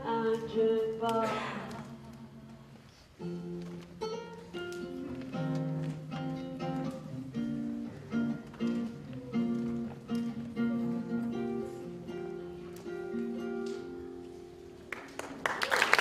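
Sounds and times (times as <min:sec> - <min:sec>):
acoustic guitar plucked: 0:03.2 - 0:14.8.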